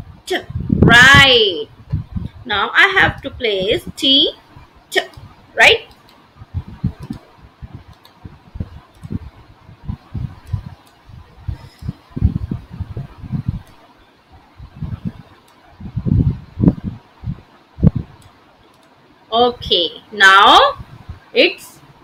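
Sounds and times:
low thumps and rumbling: 0.0 - 4.0, 6.4 - 13.8, 14.6 - 18.2
computer mouse clicks: 7.0 - 8.2, 8.8 - 9.3, 18.2 - 19.0.

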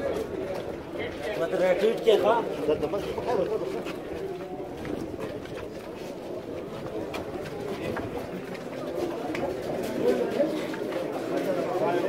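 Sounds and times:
murmur of men: 0.0 - 12.0.

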